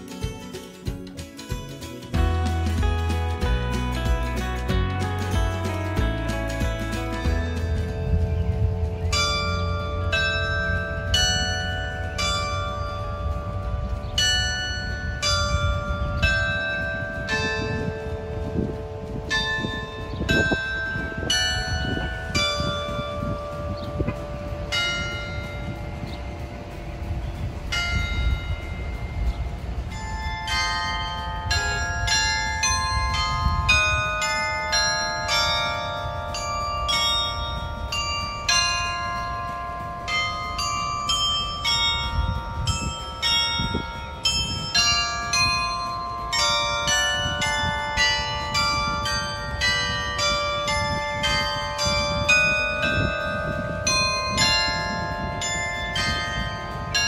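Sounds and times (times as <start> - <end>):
low rumble: 2.2 - 34.9
bell chime playing a tune: 2.2 - 57.0.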